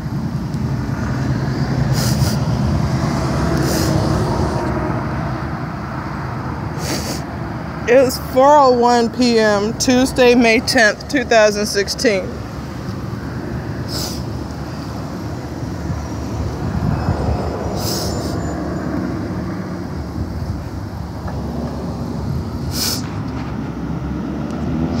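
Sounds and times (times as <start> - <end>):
road traffic rumble: 0.0 - 25.0.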